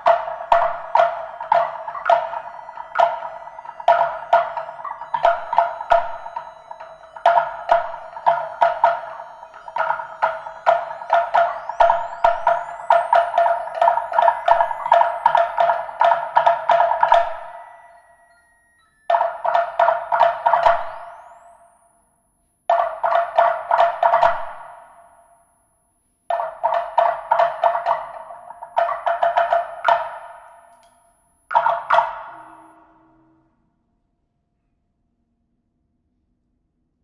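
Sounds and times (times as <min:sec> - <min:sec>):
rapid wooden percussion strikes: 0:00.0 - 0:18.0, 0:19.1 - 0:21.4, 0:22.7 - 0:25.0, 0:26.3 - 0:30.8, 0:31.5 - 0:33.1.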